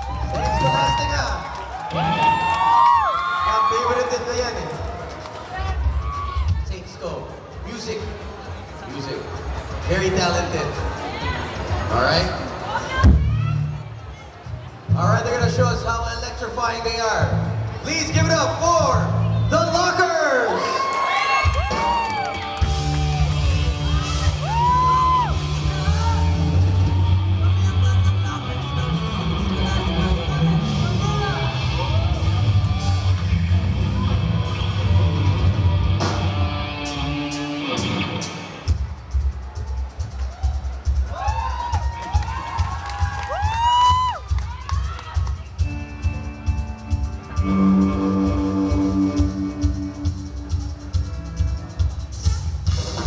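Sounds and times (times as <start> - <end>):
audience whooping and yelling: 0.0 - 6.7, 19.5 - 28.6, 39.5 - 45.6
drum kit beating: 21.3 - 53.0
live rock band playing: 21.5 - 43.5, 45.2 - 53.0
electric guitar and bass chords: 21.7 - 38.8, 45.4 - 53.0.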